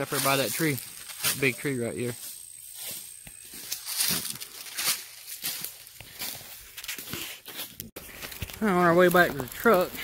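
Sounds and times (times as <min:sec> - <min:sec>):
footsteps through dry leaves: 0:00.0 - 0:10.0.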